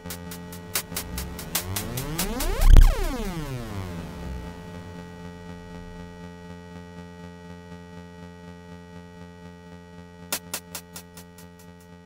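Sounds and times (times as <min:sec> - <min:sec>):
sustained synthesizer chord: 0:00.0 - 0:07.1.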